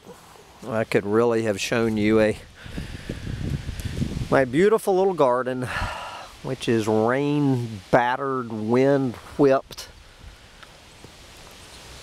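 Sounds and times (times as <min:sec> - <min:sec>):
wind hissing and rumbling: 0:00.2 - 0:12.0
faint ticks: 0:10.6 - 0:11.7.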